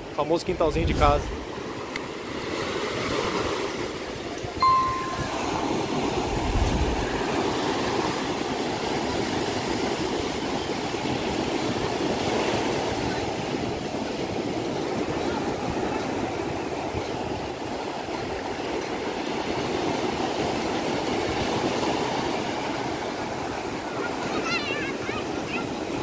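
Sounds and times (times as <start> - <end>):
high-pitched tone: 4.6 - 6.1.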